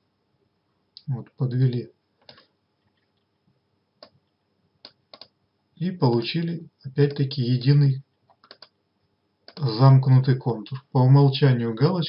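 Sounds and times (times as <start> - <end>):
computer mouse clicks: 2.2 - 3.3, 4.0 - 5.4, 8.3 - 8.8, 9.4 - 9.7.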